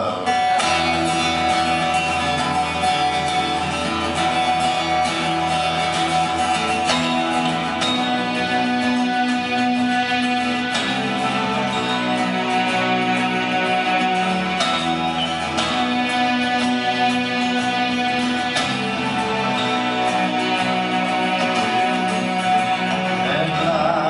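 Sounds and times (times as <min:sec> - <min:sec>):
guitar trio playing chords: 0:00.0 - 0:24.0.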